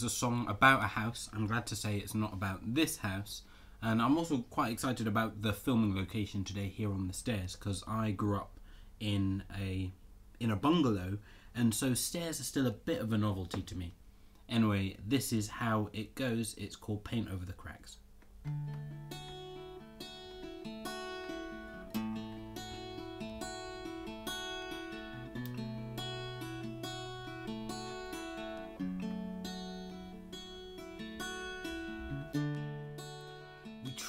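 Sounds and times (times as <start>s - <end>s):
acoustic guitar plucking: 18.4s - 34.0s.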